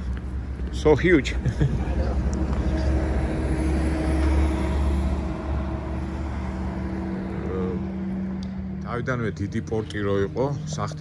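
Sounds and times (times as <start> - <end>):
vehicle engine rumble passing: 0.0 - 11.0.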